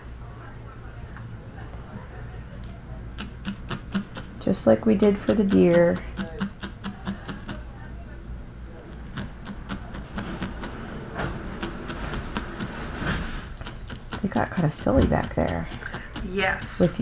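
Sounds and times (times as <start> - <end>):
felting needle stabbing wool: 3.2 - 4.4, 5.0 - 7.6, 9.0 - 10.8, 13.6 - 17.0.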